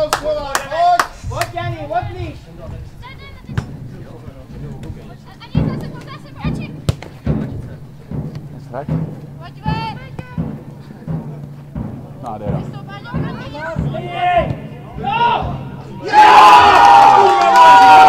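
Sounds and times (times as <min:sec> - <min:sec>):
ball being kicked: 0:03.5 - 0:03.9, 0:05.6 - 0:15.8
distant players shouting: 0:12.5 - 0:18.0.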